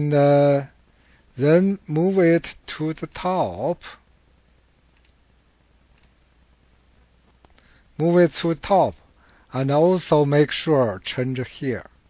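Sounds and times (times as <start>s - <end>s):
faint mouse clicks: 4.9s - 5.2s, 6.0s - 6.2s.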